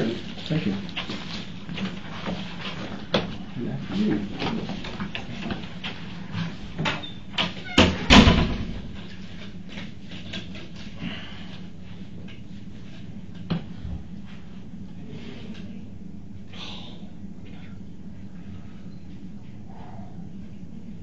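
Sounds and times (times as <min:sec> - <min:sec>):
low room hum: 0:00.0 - 0:21.0
door shutting thud: 0:07.8 - 0:08.8.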